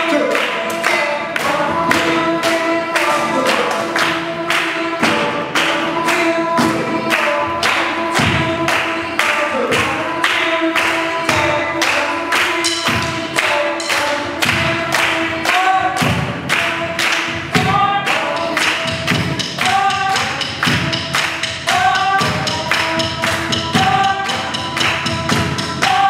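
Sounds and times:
group singing a cappella: 0:00.0 - 0:26.0
steady percussive beat: 0:00.0 - 0:26.0.

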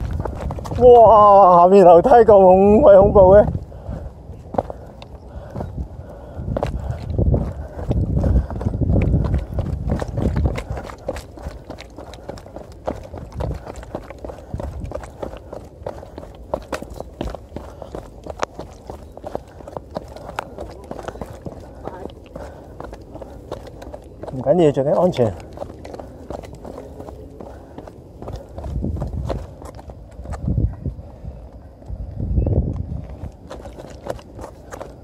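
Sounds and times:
running footsteps on a path: 0:00.0 - 0:35.0.

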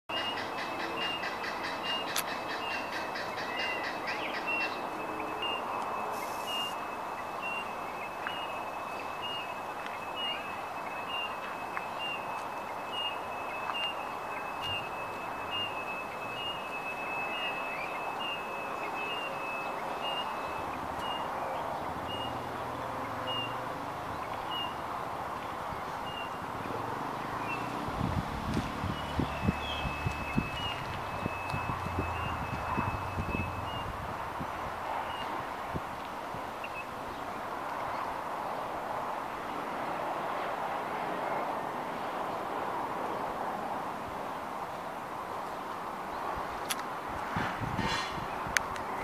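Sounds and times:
birds chirping: 0:00.1 - 0:35.4
outdoor hiss: 0:05.8 - 0:10.8.

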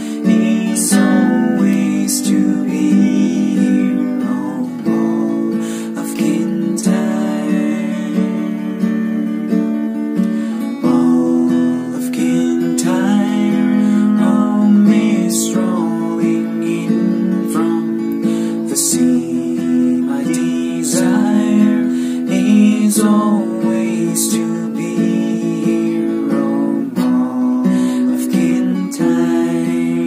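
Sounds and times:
man singing: 0:00.0 - 0:09.4, 0:10.3 - 0:30.0
acoustic guitar strumming: 0:00.0 - 0:30.0.

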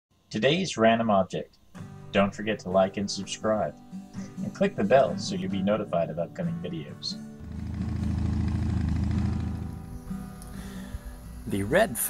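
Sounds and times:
motorcycle engine idling: 0:07.4 - 0:10.0.

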